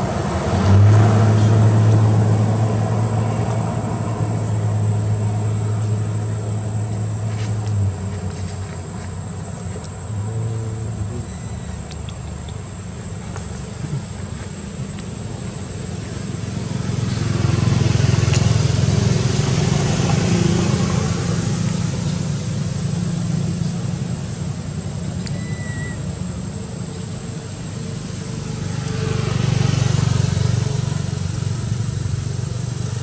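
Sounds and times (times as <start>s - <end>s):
vehicle engine rumble passing: 0.0s - 33.0s.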